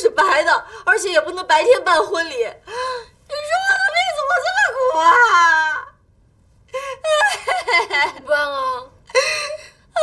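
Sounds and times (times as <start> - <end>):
woman wailing and crying: 6.9 - 8.0.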